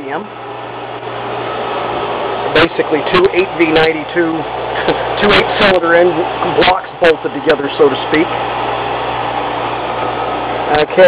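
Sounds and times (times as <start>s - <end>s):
engine room machinery hum: 0.0s - 11.0s.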